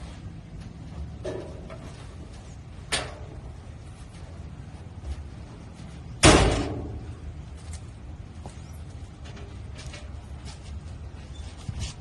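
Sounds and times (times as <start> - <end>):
metal door slamming: 6.2 - 7.1.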